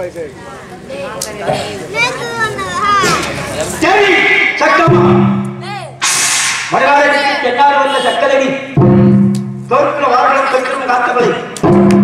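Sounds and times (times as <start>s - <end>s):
man speaking through loudspeakers: 3.6s - 5.4s, 6.7s - 8.8s, 9.7s - 11.6s.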